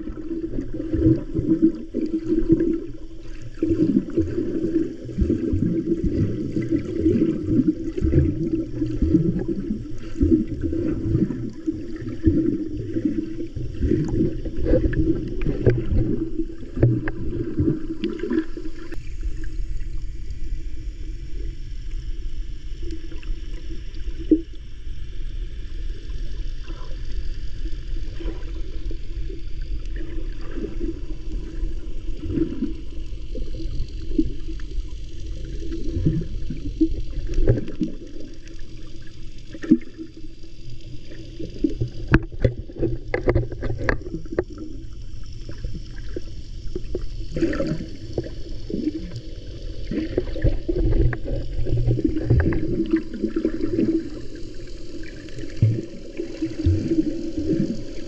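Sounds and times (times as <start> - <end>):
low rumble of water: 0.0 - 58.0
underwater sloshing and gurgling: 0.0 - 58.0.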